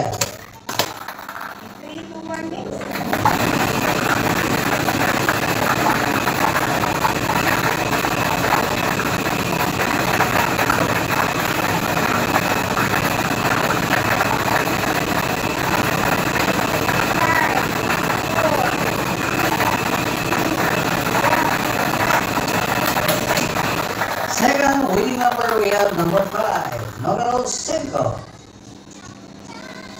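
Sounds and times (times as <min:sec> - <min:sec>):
plastic balls rattling in drum: 0:00.0 - 0:02.0
blower running: 0:00.0 - 0:29.5.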